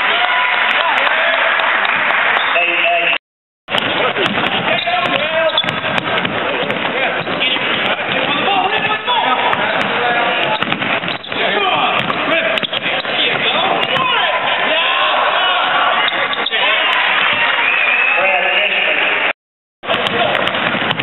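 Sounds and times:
crowd and player voices: 0.0 - 21.0
basketball bouncing on court: 3.7 - 14.2, 19.8 - 21.0
sharp thuds: 3.7 - 14.2.

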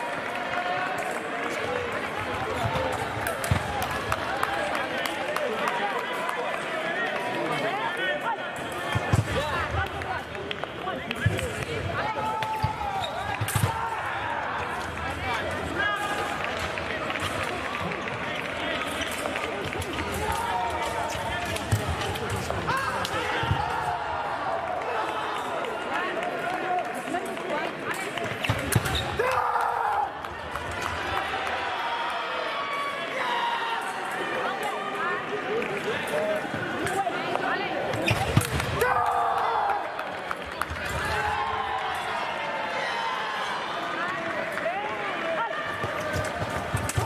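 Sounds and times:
voices in a hall: 0.0 - 47.0.

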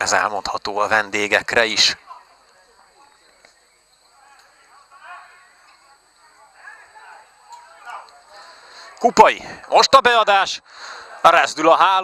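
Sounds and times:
distant players shouting: 4.1 - 10.2.

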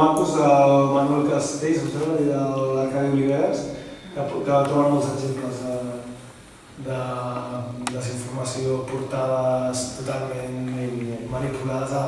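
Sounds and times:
man speaking: 0.0 - 6.2, 6.8 - 12.0.

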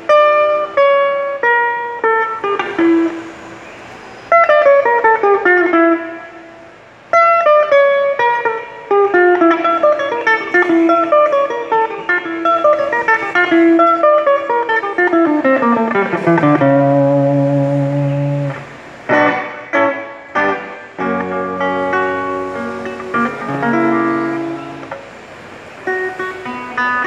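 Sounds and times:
strummed guitar chords: 0.0 - 3.6, 4.3 - 27.0
fingerstyle guitar melody: 0.0 - 27.0.

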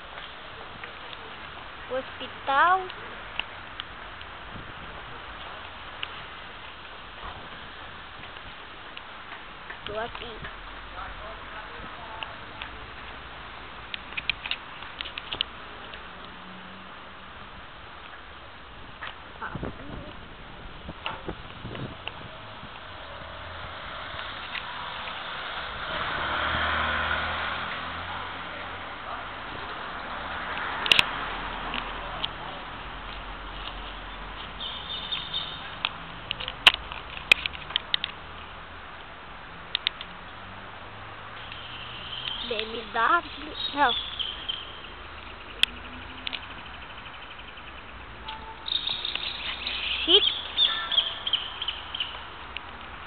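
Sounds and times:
vehicle passing by: 21.6 - 36.6
small birds chirping: 33.4 - 36.6, 41.4 - 53.0.

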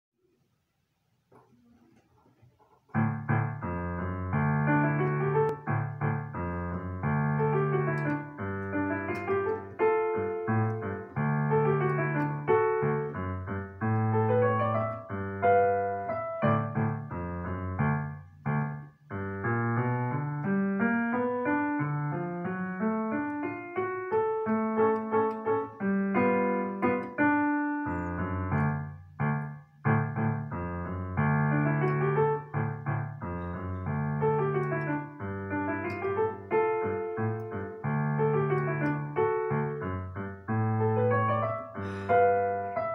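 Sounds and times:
boogie-woogie piano: 2.8 - 42.9.

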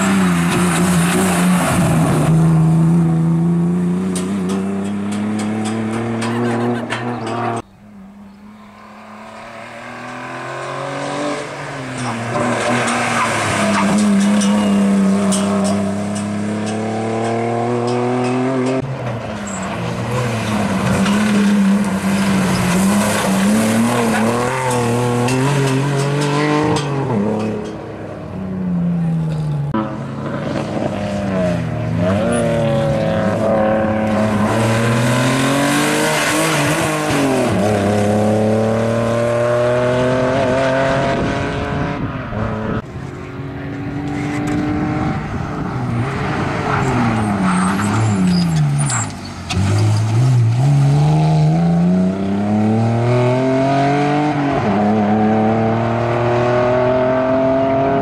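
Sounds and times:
tyres squealing and skidding: 6.1 - 16.0, 45.9 - 50.2
car engine revving hard: 32.0 - 42.8, 49.5 - 58.0.

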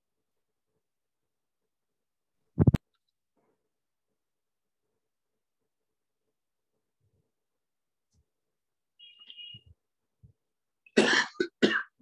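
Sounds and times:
man coughing: 11.0 - 12.0.

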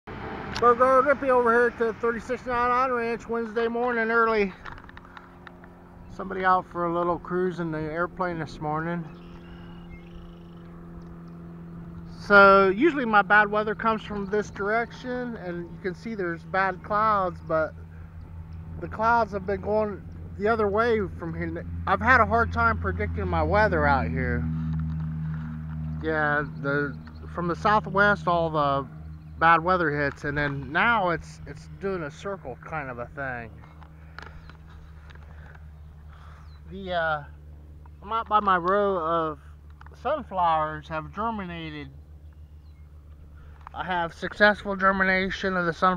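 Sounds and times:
propeller airplane droning: 0.0 - 45.9
steady low hum: 0.1 - 45.9.

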